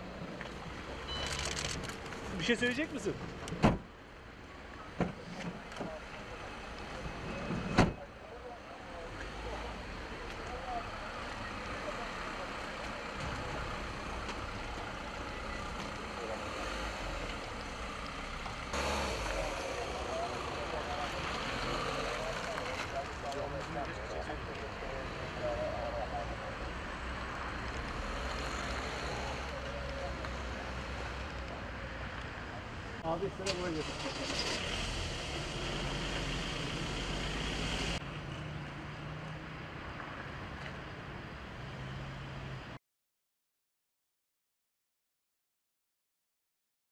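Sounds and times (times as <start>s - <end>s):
street noise: 0.0s - 42.8s.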